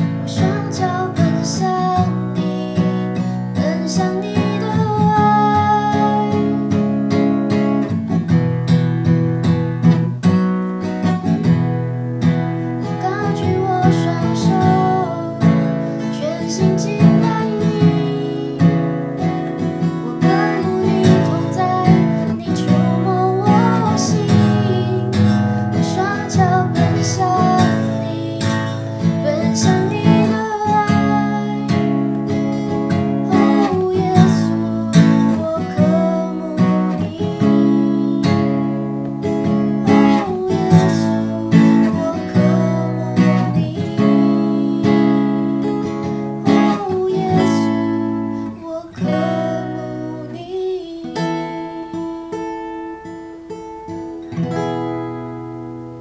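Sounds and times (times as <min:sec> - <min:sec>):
acoustic guitar strumming chords: 0:00.0 - 0:56.0.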